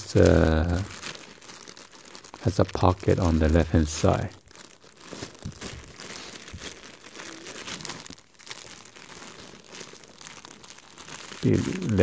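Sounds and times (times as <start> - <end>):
plastic bags crinkling: 0.0 - 12.0.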